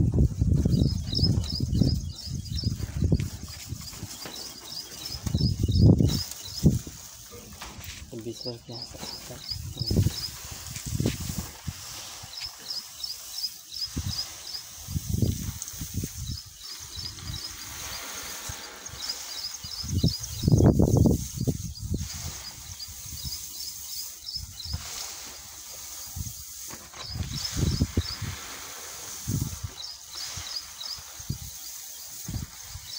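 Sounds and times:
seeds rustling on plastic sheet: 0:00.2 - 0:32.9.

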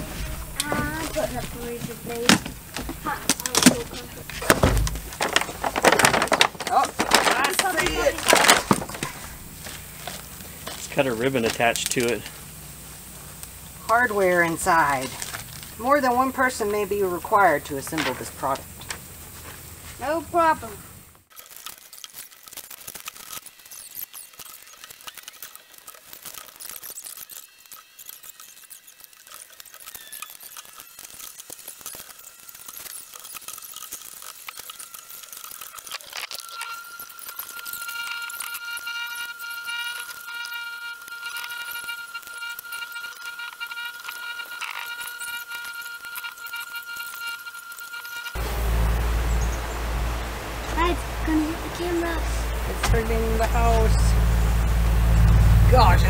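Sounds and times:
outdoor noise on microphone: 0:00.0 - 0:22.4, 0:23.0 - 0:56.0
steady held tone: 0:34.5 - 0:56.0.

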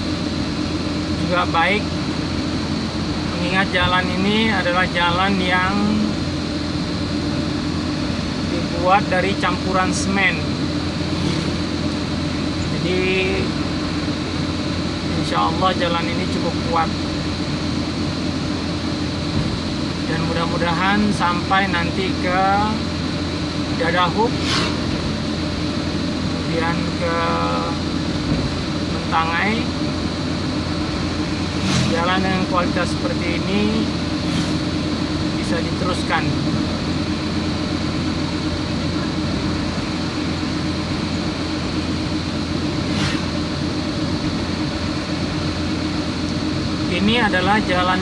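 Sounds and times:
constant low hum: 0:00.0 - 0:48.0
vehicle engine and tyre noise: 0:00.0 - 0:48.0.

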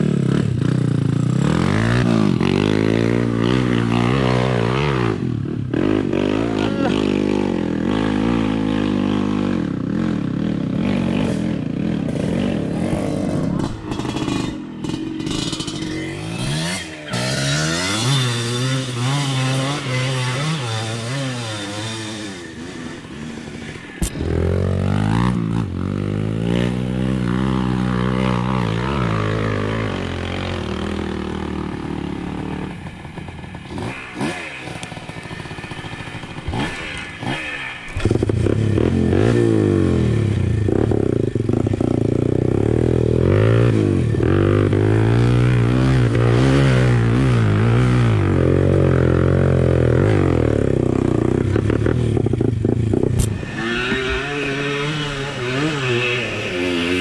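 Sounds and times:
dirt bike engine running: 0:00.0 - 0:57.0.

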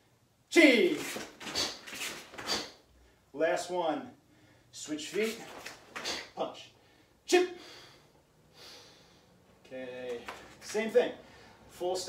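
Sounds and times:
kiai shout: 0:00.5 - 0:01.8
soft swishing of gi: 0:00.8 - 0:02.9, 0:05.0 - 0:06.4.

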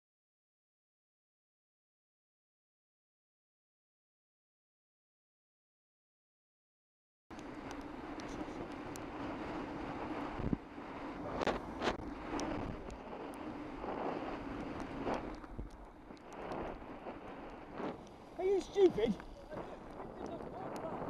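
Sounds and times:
wind noise on microphone: 0:07.3 - 0:21.0.

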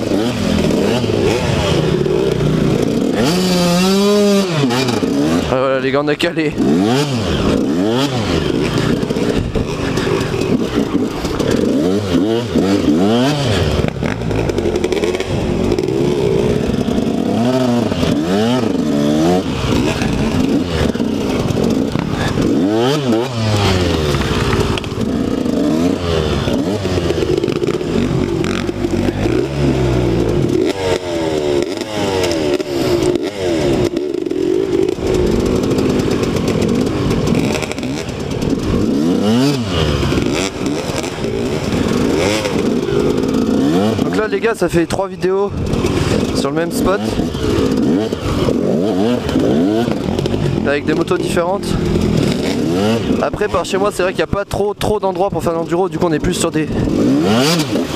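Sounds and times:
dirt bike engine revving: 0:00.0 - 0:57.9.

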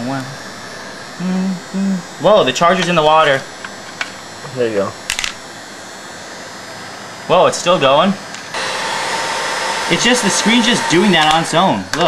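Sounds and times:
heat gun blowing air: 0:05.0 - 0:12.0.

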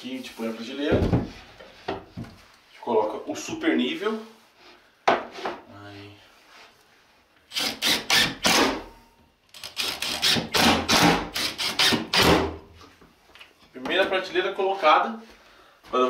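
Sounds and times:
cordless drill driving screws: 0:07.5 - 0:08.8, 0:09.5 - 0:12.4.

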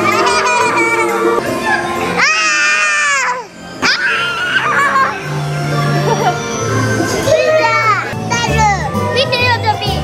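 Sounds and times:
upbeat ride music: 0:00.0 - 0:10.0
children's excited exclamations: 0:02.2 - 0:05.2.

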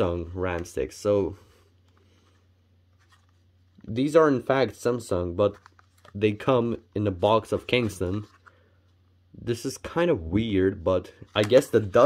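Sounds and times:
man talking: 0:00.0 - 0:01.6, 0:03.8 - 0:08.4, 0:09.3 - 0:12.0
low steady hum: 0:00.0 - 0:12.0
light clicks of plastic packs: 0:11.3 - 0:12.0.

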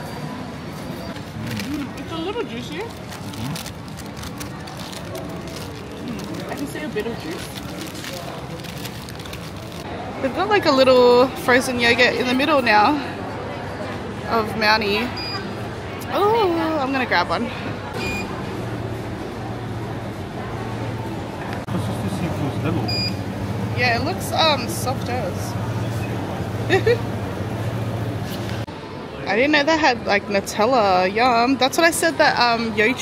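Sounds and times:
hum of voices and machinery: 0:00.0 - 0:33.0
indistinct chatter: 0:00.0 - 0:33.0.

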